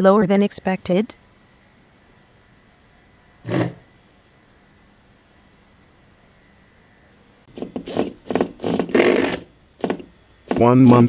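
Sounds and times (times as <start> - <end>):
scraping and rubbing noises: 3.4 - 3.8, 7.5 - 11.0.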